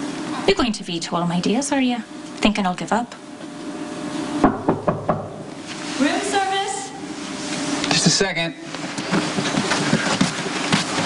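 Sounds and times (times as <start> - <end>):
knocks on a door: 4.4 - 5.5.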